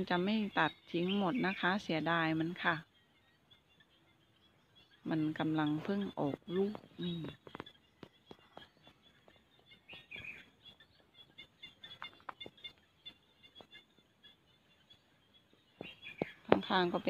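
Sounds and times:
woman speaking: 0:00.0 - 0:02.9, 0:05.1 - 0:07.5, 0:16.5 - 0:17.0
small birds chirping: 0:00.0 - 0:17.0.

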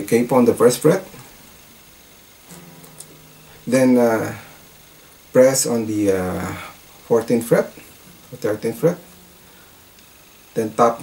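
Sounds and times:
guitar note ringing: 0:00.7 - 0:11.0
capo clicking on guitar strings: 0:02.4 - 0:11.0.

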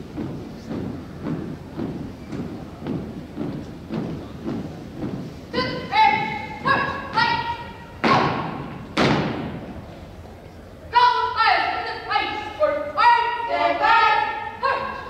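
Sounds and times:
marching footsteps on wooden floor: 0:00.0 - 0:09.8
loud stomps ringing in hall: 0:00.0 - 0:09.9.

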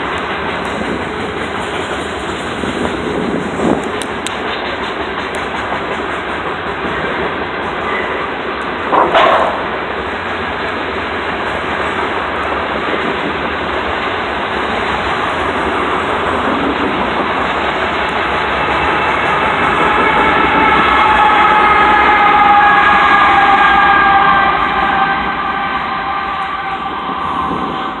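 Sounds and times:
freight train rumbling on rails: 0:00.0 - 0:28.0.

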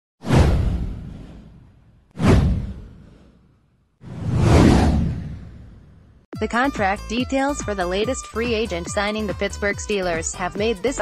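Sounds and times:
downward whoosh: 0:04.0 - 0:06.0.

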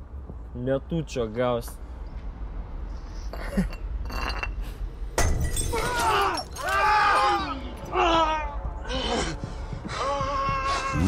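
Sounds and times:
man crying and screaming: 0:05.7 - 0:11.0.

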